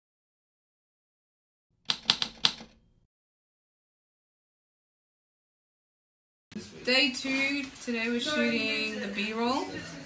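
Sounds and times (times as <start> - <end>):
typewriter key strikes: 1.9 - 2.8.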